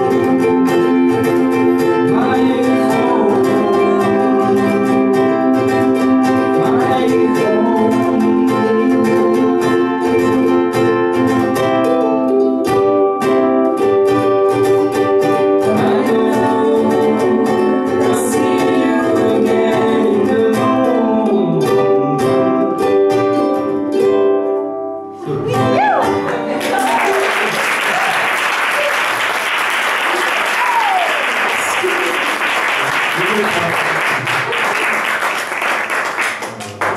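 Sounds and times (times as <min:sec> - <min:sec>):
ukuleles strummed and plucked: 0:00.0 - 0:36.9
man and woman singing: 0:01.8 - 0:10.5, 0:15.4 - 0:22.9, 0:25.2 - 0:26.7
audience applauding: 0:26.1 - 0:36.9.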